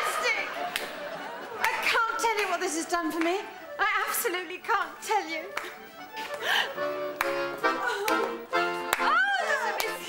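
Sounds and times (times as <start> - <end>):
accordion playing held chords: 0.9 - 10.0.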